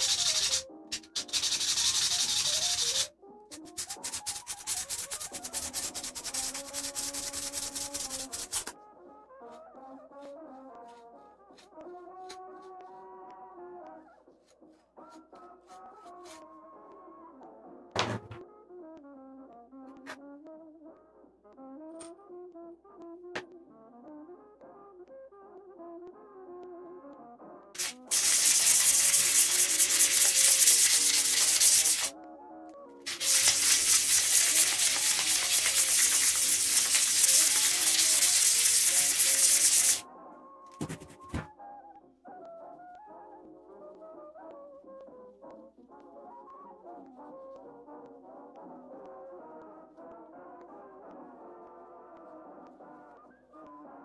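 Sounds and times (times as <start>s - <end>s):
sandpaper rasping on metal: 0.0s - 8.7s, 27.8s - 32.1s, 33.1s - 40.0s.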